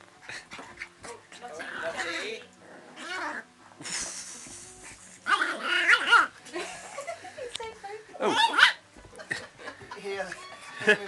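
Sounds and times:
puppies play-fighting: 0.0 - 6.6, 8.2 - 9.1
high yappy barks: 8.3 - 8.8.

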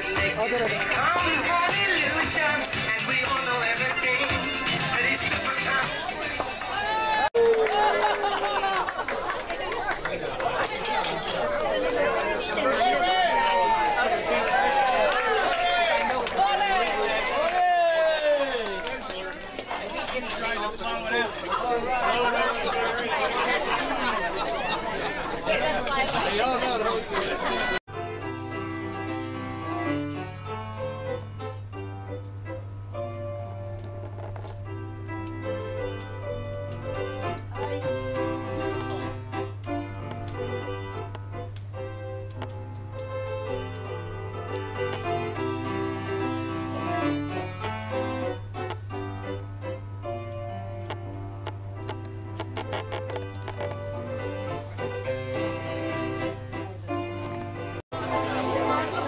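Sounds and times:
murmur of many diners talking: 0.0 - 7.2, 8.8 - 17.5, 18.6 - 27.8, 51.3 - 59.0
piano music: 27.9 - 59.0.

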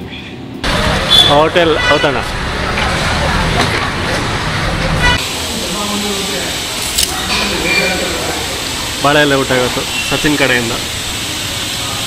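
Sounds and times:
street traffic rumble: 0.0 - 12.0
vehicle horn toot: 1.1 - 2.2.

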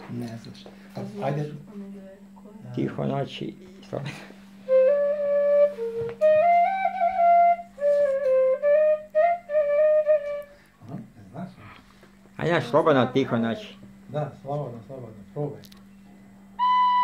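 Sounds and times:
wooden flute melody: 4.6 - 10.7, 16.6 - 17.0.

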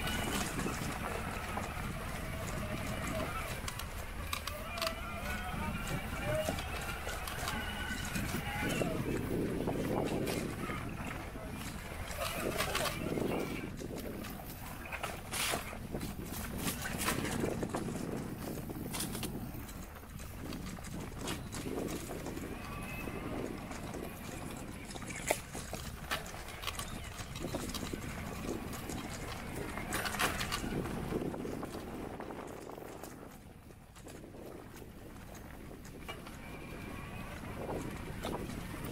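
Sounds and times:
bicycle rattling over dirt track: 0.0 - 38.9
wind rumble on microphone: 0.0 - 38.9.

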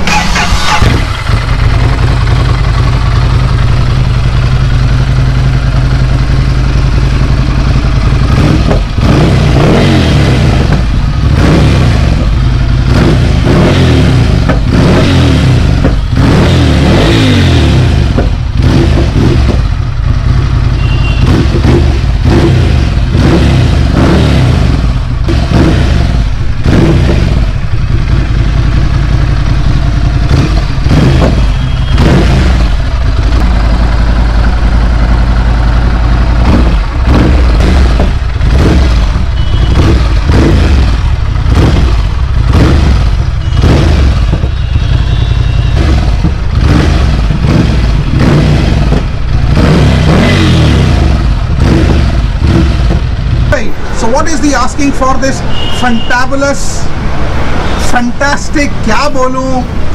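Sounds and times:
motorcycle engine idling and revving: 0.0 - 59.9.

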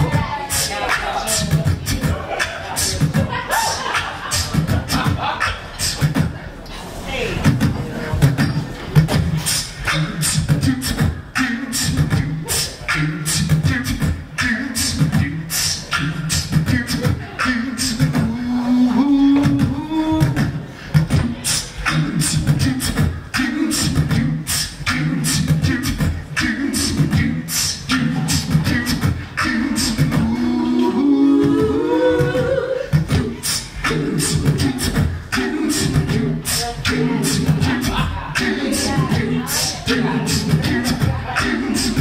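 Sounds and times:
beatboxed kick and snare: 0.0 - 6.4, 7.4 - 30.5, 31.4 - 42.0
sung bass line: 7.2 - 42.0.

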